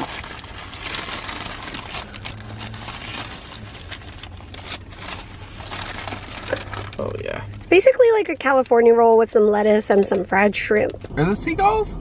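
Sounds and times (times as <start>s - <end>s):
paper wrapping crinkling: 0.0s - 7.6s.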